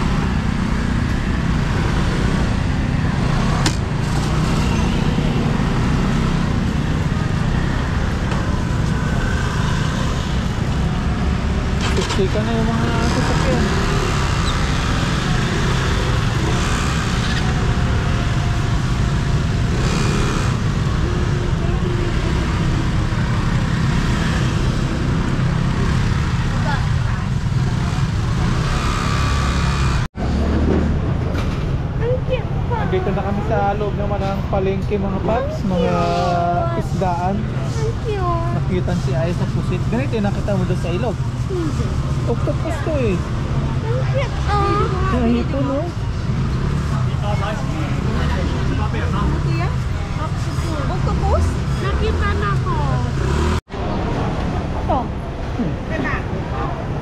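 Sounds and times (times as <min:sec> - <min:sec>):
motor scooter engines running: 0:00.0 - 0:57.0.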